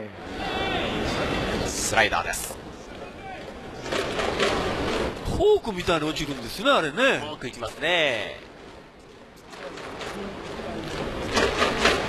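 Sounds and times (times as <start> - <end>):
stadium crowd voices: 0.0 - 8.8.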